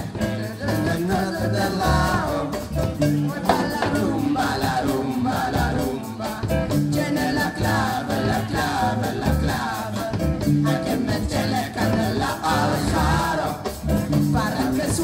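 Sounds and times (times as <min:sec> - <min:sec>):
congas: 0:00.0 - 0:15.0
live latin rock band: 0:00.0 - 0:15.0
people singing into microphones: 0:00.0 - 0:15.0.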